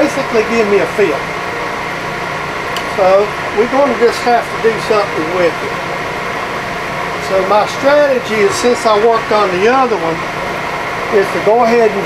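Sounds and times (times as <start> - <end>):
electric motor humming: 0.0 - 12.0.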